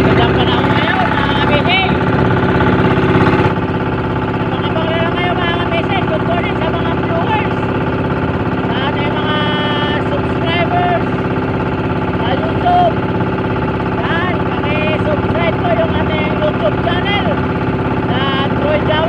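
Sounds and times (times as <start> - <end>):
man talking: 0.0 - 2.1, 4.4 - 7.8, 8.6 - 11.3, 12.2 - 13.0, 14.0 - 17.4, 18.0 - 19.0
boat engine running: 0.0 - 19.0.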